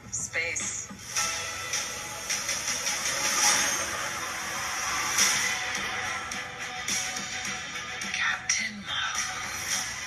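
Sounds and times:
trailer music and sound effects: 0.0 - 10.0.

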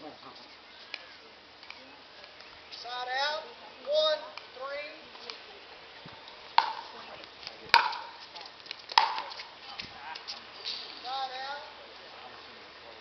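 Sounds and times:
paddles hitting plastic ball: 6.6 - 8.1, 8.7 - 9.9.

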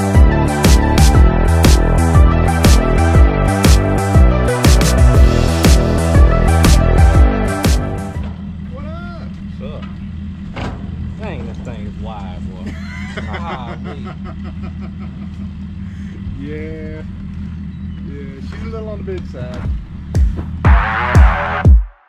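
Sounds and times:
outboard motor idling: 8.0 - 20.2.

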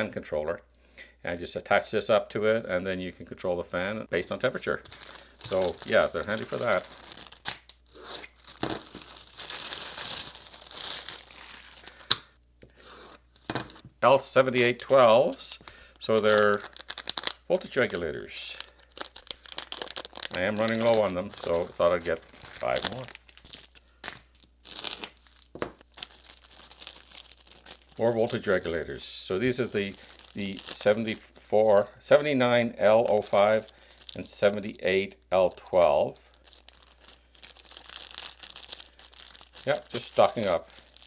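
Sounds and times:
plastic packets crinkling: 4.2 - 12.4, 13.1 - 31.9, 32.8 - 41.0
packet tearing open: 4.8 - 13.2, 15.7 - 28.9, 29.6 - 31.2, 36.3 - 41.0.

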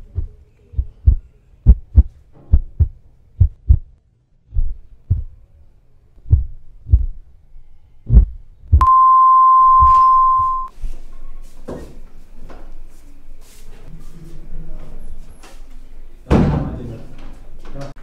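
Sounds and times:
heartbeat thumps: 0.0 - 5.4, 6.2 - 7.2, 8.1 - 8.9, 9.8 - 10.7
heart monitor flatline beep: 8.8 - 10.7.

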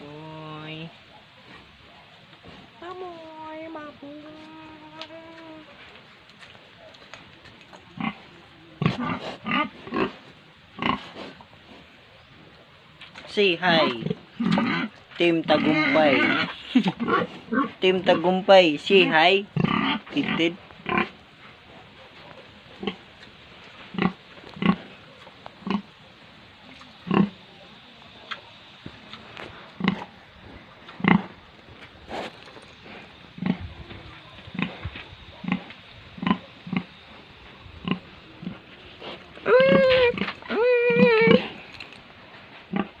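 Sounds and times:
pigs grunting: 7.8 - 10.2, 10.8 - 11.4, 13.7 - 18.3, 19.6 - 21.2, 23.9 - 25.9, 27.0 - 27.5, 29.8 - 31.4, 32.0 - 37.1, 42.7 - 43.0.

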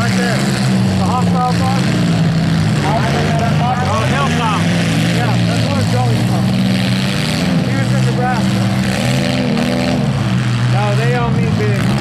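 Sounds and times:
car engines droning: 0.0 - 12.0.

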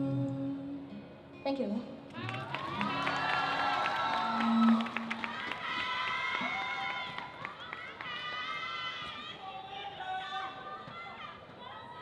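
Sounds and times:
audience cheering and shouting: 2.2 - 11.4.

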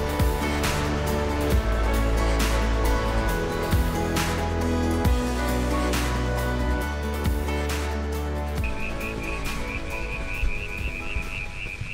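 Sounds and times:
soft background music: 0.0 - 11.9.

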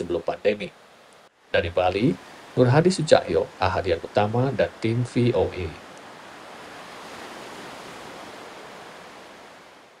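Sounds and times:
ocean surf washing onto beach: 0.0 - 10.0.

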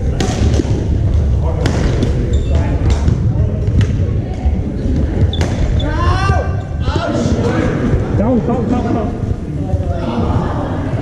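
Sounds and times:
players' voices echoing: 0.0 - 11.0.

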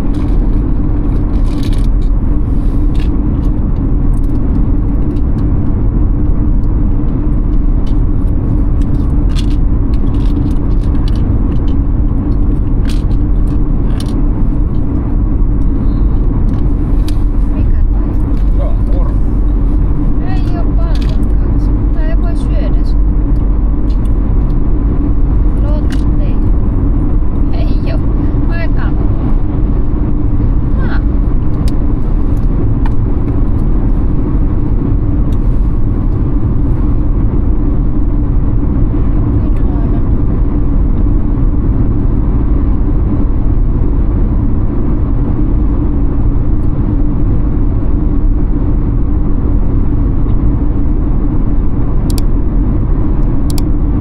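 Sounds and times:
car driving: 0.0 - 54.0.

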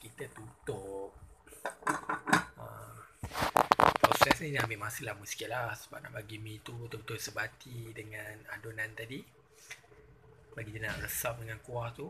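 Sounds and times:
lid scraping and rattling on pot: 1.6 - 2.6, 3.3 - 4.3.

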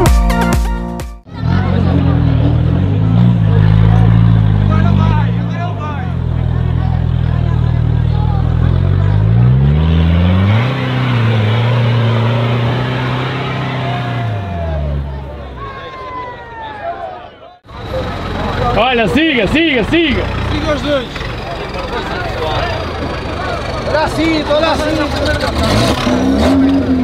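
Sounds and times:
off-road vehicle engine revving: 1.3 - 16.0, 17.6 - 27.0
crowd chatter: 1.3 - 27.0.

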